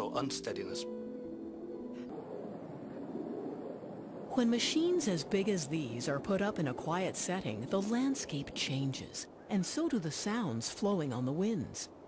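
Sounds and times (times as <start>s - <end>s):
background music sustained notes: 0.0s - 3.5s.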